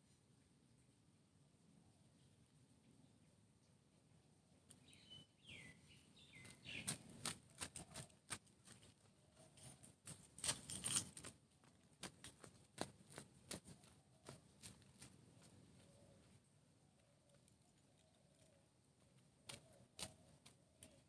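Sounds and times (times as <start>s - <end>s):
footsteps in slippers on pavement: 6.3s - 16.4s, 19.0s - 21.0s.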